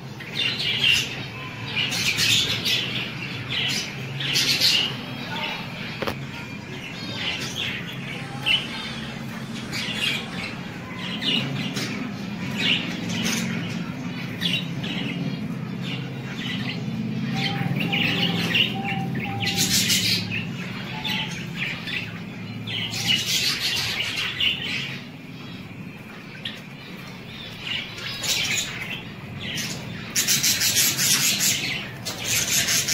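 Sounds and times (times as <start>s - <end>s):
budgerigars chirping: 6.9s - 32.9s.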